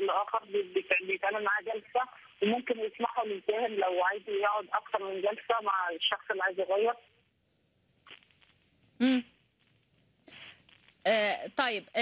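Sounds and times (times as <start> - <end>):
person talking over telephone line: 0.0 - 7.1.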